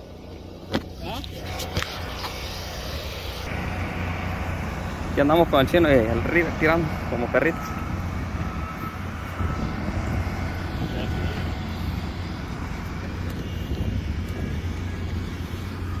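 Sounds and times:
construction machinery engine rumble: 0.0s - 16.0s.

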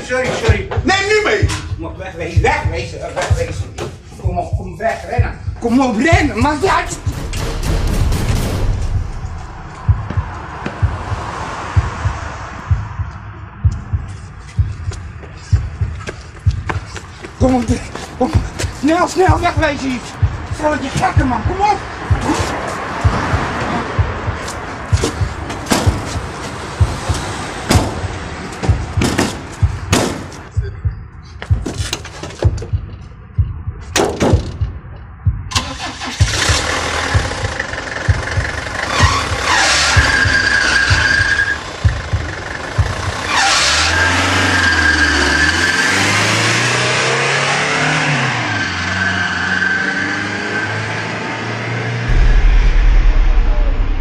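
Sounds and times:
car engine revving: 5.6s - 30.5s, 35.5s - 54.0s
sharp knocks or clicks: 31.4s - 35.6s.

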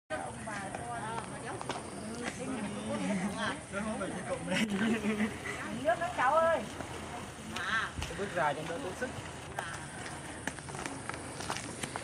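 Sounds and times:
people talking: 0.1s - 11.5s
sandal footsteps on stone: 6.0s - 12.0s.

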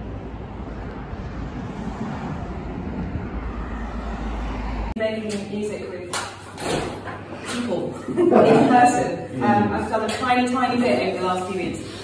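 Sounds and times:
road traffic passing: 0.0s - 7.6s.

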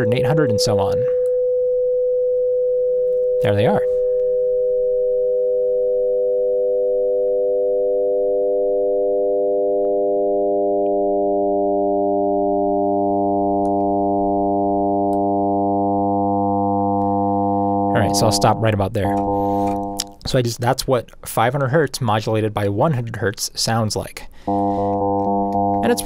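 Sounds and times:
steady synthesizer tone: 9.5s - 20.2s, 24.5s - 26.0s.

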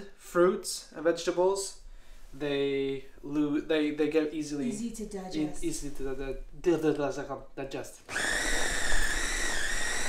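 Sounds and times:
electric food chopper whining: 8.1s - 10.0s.

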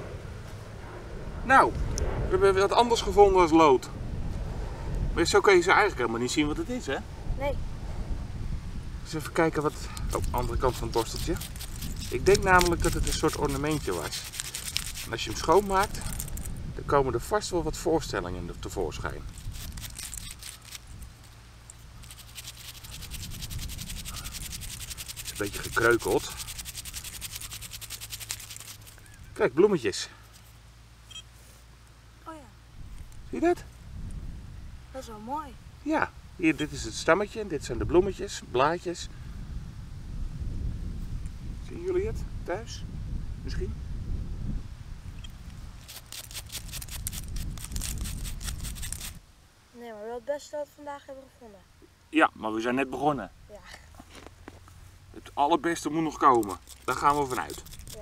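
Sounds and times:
brush scrubbing metal object: 9.7s - 16.3s, 19.2s - 29.1s, 45.8s - 49.2s, 56.1s - 58.0s.

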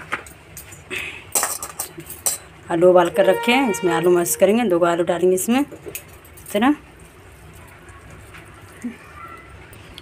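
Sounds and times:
person speaking: 3.0s - 5.0s.

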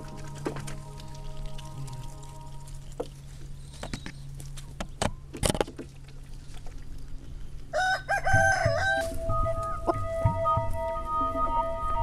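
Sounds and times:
music with long held notes: 0.0s - 3.0s, 8.7s - 12.0s
rooster crowing: 7.7s - 10.0s.

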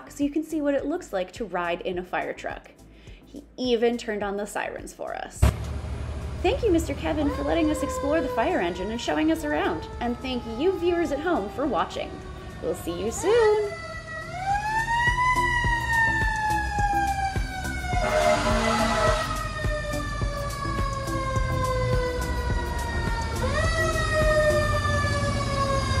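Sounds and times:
low engine rumble: 5.4s - 15.3s
fire engine siren wailing: 5.7s - 26.0s.

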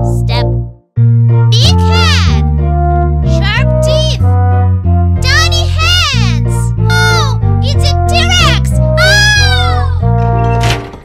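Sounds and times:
bouncy cartoon music: 0.0s - 11.0s.

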